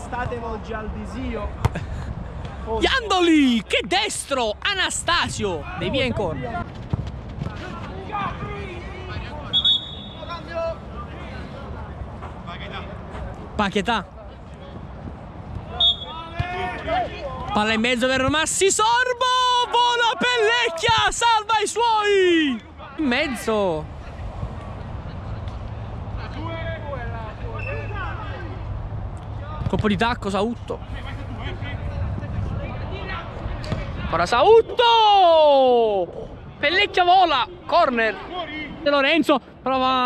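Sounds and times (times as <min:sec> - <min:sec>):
players' voices and shouts: 0:00.0 - 0:40.0
players shouting at a distance: 0:15.6 - 0:17.6, 0:18.6 - 0:23.5.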